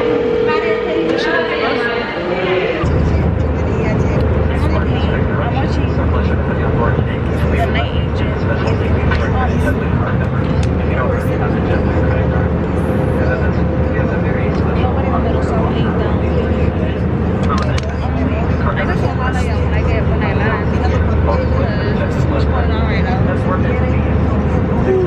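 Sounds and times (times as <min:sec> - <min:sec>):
jet engines droning: 0:00.0 - 0:25.0.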